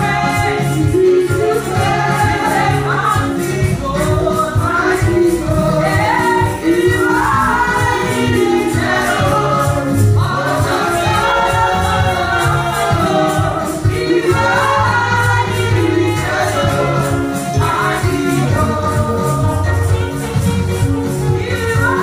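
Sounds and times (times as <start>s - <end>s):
gospel choir singing: 0.0s - 22.0s
held bass notes: 0.0s - 22.0s
steady percussive beat: 0.0s - 22.0s.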